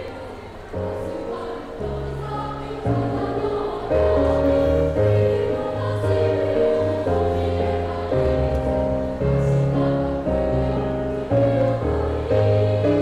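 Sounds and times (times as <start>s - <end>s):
children's choir singing: 0.0s - 13.0s.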